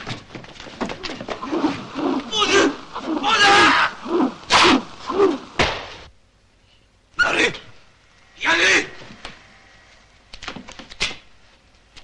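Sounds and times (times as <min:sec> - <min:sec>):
person grunting and shouting: 0:02.2 - 0:05.5
harsh yells: 0:02.3 - 0:05.4.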